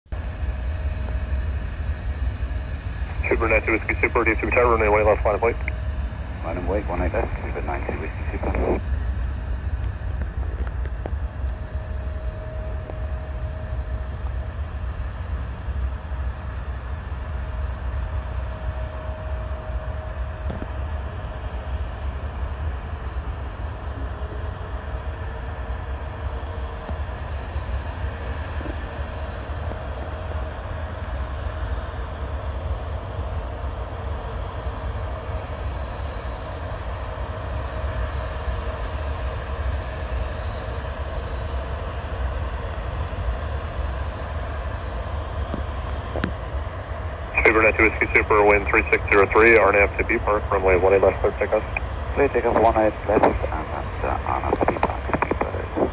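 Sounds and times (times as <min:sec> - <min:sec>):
distant jet engines running: 0:00.1 - 0:55.9.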